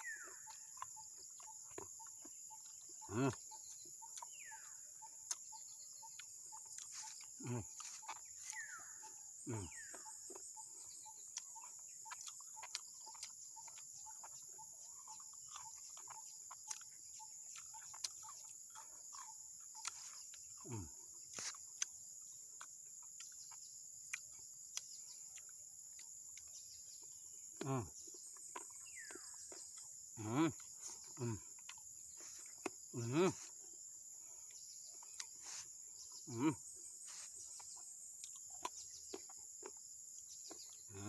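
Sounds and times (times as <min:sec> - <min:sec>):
man humming while eating: 0:03.0 - 0:04.3, 0:06.8 - 0:10.4, 0:19.8 - 0:21.6, 0:27.6 - 0:28.2, 0:30.2 - 0:33.7, 0:35.2 - 0:37.7, 0:40.5 - 0:41.0
insects droning in grass: 0:14.9 - 0:25.1, 0:25.7 - 0:41.0.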